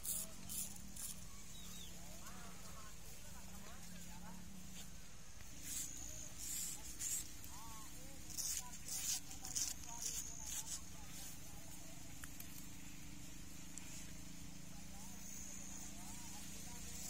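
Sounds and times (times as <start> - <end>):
razor scraping beard: 0.0 - 1.2, 5.5 - 11.4
shaving brush through foam: 0.0 - 1.3, 4.7 - 11.9.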